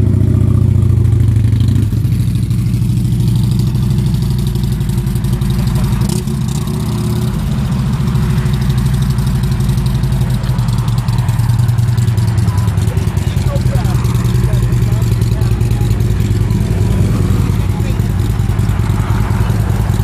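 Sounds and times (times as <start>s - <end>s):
motorcycle engine pulling away: 0.0s - 20.0s.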